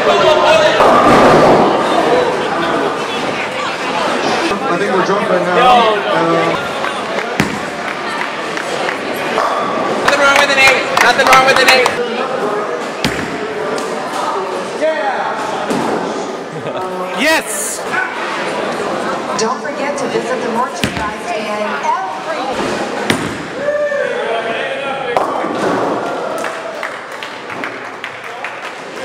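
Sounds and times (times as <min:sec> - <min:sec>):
bowling ball thud: 0:07.3 - 0:07.9.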